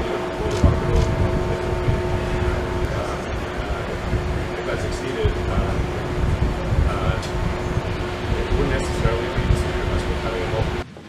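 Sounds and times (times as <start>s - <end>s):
wind buffeting microphone: 0.0s - 10.8s
faint indistinct voices: 0.0s - 11.0s
steady background hum: 0.0s - 11.0s.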